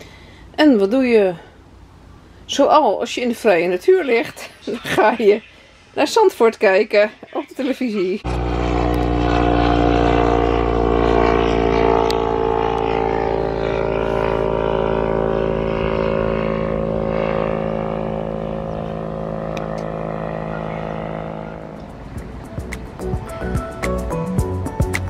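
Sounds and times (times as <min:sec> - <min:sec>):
propeller aircraft engine drone: 0:00.0 - 0:07.3, 0:08.2 - 0:25.0.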